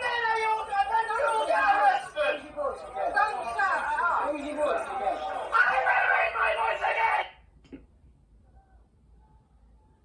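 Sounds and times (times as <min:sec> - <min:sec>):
people talking: 0:00.0 - 0:07.4.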